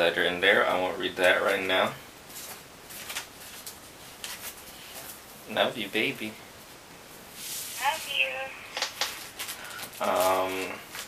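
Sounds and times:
paper rustling: 0:02.3 - 0:05.2, 0:08.8 - 0:11.0.

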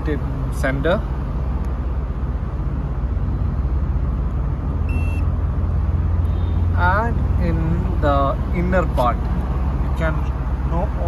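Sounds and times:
short electronic beep: 0:04.9 - 0:05.3.

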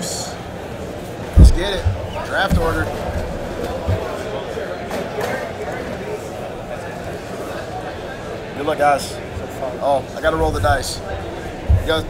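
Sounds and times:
distant voices echoing in hall: 0:00.0 - 0:12.0.

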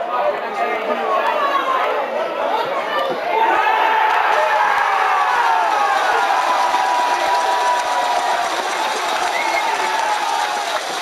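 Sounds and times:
crowd cheering: 0:02.4 - 0:11.0.

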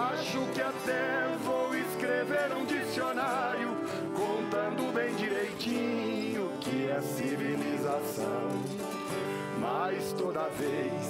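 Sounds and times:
acoustic guitar picking: 0:00.0 - 0:11.0
person singing: 0:00.0 - 0:11.0.

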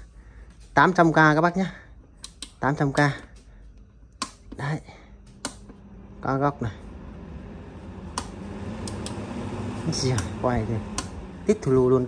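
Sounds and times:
desk fan humming: 0:00.0 - 0:12.0
fan button click: 0:02.2 - 0:03.1, 0:04.2 - 0:04.6, 0:05.3 - 0:05.8, 0:08.1 - 0:09.3, 0:10.1 - 0:11.8.

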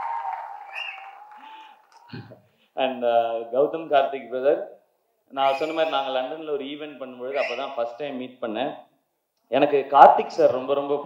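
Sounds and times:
audience applause and cheering: 0:00.0 - 0:02.3.

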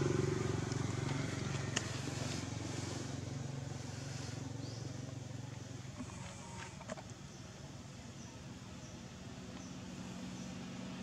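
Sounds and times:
small engine running: 0:00.0 - 0:07.0.

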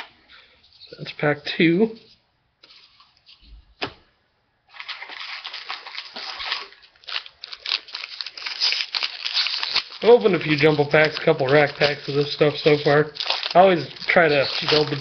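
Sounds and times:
foil wrapper tearing and crinkling: 0:04.7 - 0:15.0.

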